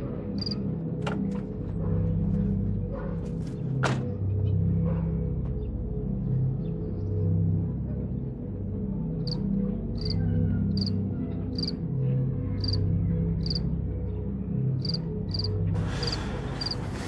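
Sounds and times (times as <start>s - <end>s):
background music with drone: 0.0s - 17.0s
crickets chirping: 0.4s - 0.6s, 10.0s - 10.2s, 13.4s - 13.6s, 14.8s - 16.8s
hiss: 15.8s - 17.0s.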